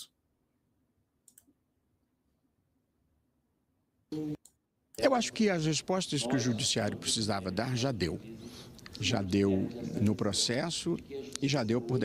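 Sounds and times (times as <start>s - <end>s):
faint clicks: 1.2s - 1.5s.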